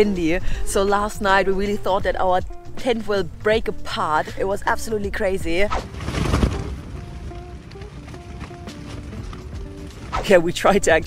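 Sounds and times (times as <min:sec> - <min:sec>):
slow soft background music: 0:00.0 - 0:10.8
wind shaking tent fabric: 0:05.2 - 0:11.0.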